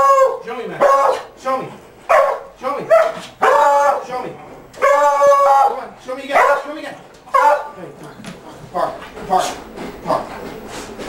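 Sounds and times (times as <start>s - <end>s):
dog barking: 0.0s - 1.4s, 2.1s - 4.1s, 4.8s - 5.7s, 6.3s - 7.8s.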